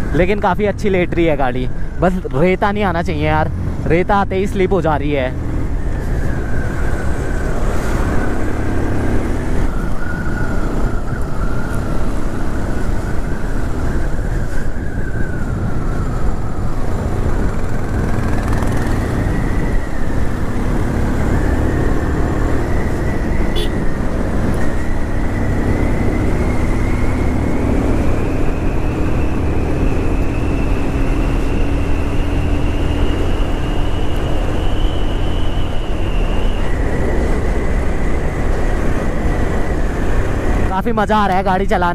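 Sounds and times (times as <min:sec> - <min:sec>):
motorcycle engine whine: 0:00.0 - 0:41.9
wind rumble on microphone: 0:05.3 - 0:41.7.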